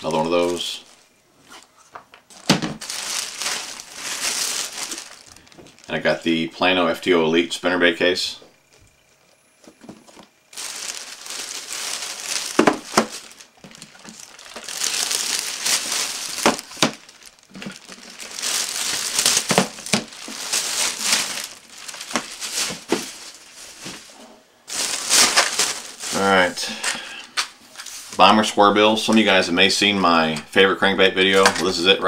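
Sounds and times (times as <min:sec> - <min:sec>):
plastic bag rustling: 0:00.0 - 0:06.5, 0:09.6 - 0:28.4.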